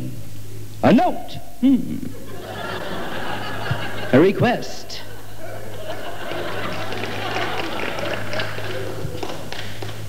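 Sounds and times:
steady low hum: 0.0s - 10.0s
audience laughing: 2.1s - 10.0s
audience murmuring: 2.1s - 10.0s.

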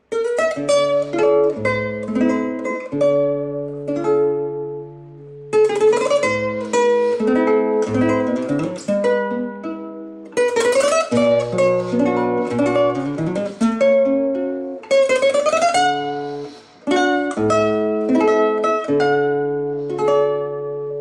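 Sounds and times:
fingerpicked classical guitar: 0.0s - 21.0s.

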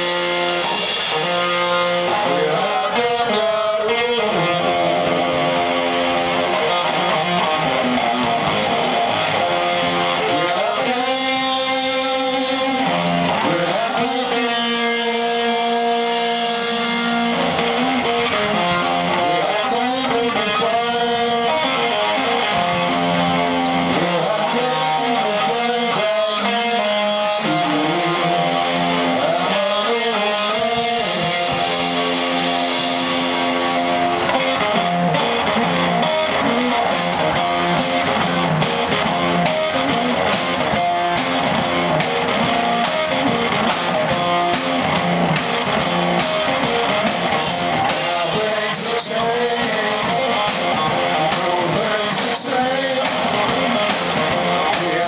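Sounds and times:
drum kit playing: 0.0s - 55.0s
electric guitar riff: 0.0s - 55.0s.

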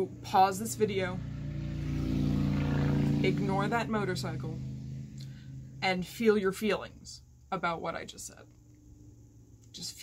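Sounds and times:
motorcycle engine going by: 0.0s - 5.8s.

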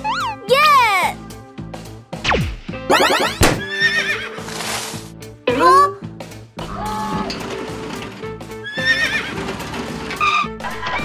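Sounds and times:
background music: 0.0s - 11.0s
cartoon sound effects: 2.9s - 3.6s.

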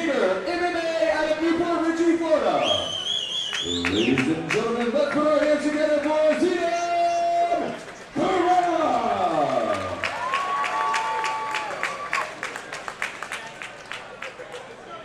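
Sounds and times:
audience clapping and cheering: 3.5s - 6.6s, 7.8s - 14.8s.

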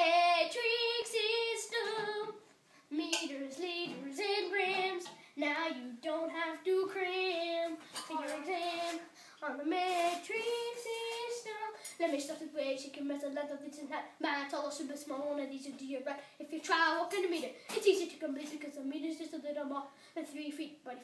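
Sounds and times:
boy singing unaccompanied: 0.0s - 21.0s.

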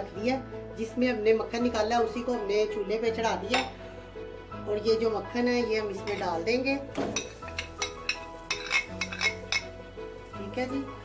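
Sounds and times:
background music: 0.0s - 11.0s
metal spoon scraping metal pot: 7.2s - 9.7s.

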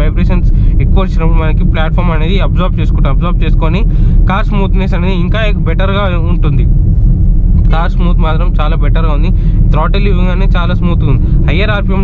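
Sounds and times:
man talking: 0.0s - 6.7s, 7.6s - 12.0s
car engine low rumble: 0.0s - 12.0s.

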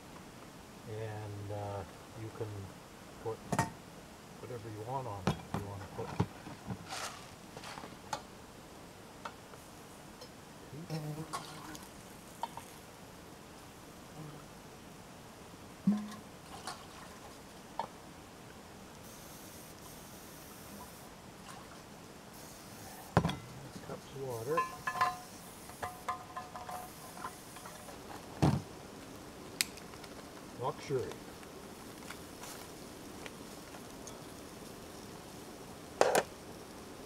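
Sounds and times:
pots and utensils clinking: 24.5s - 28.0s.

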